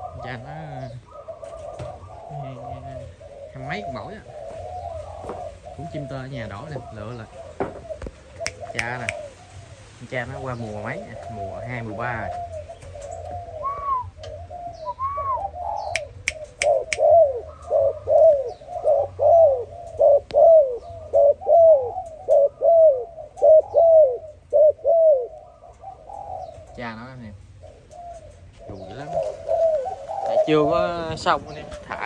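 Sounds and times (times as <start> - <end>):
dove cooing: 0.0 - 32.0.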